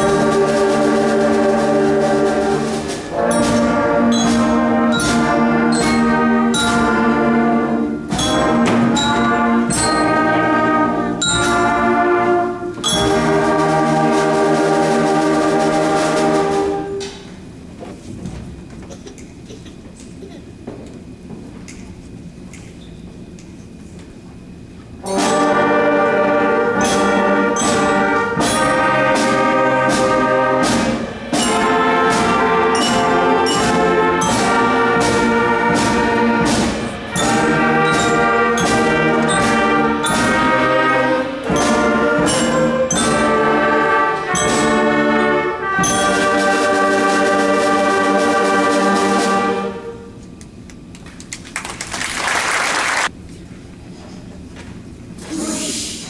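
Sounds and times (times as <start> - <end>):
concert band playing brass chords: 0.0 - 17.3, 25.0 - 50.2.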